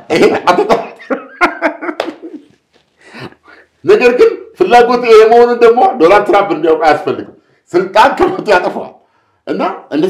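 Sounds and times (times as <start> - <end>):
man laughing hard: 0.0 - 2.5.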